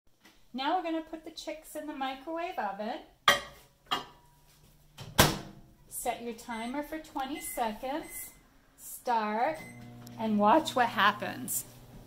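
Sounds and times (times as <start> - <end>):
microwave door banging shut: 5.0 - 5.6.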